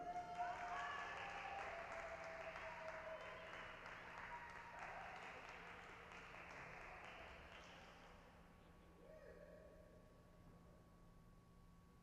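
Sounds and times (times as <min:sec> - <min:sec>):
small audience applause: 0:00.0 - 0:08.3.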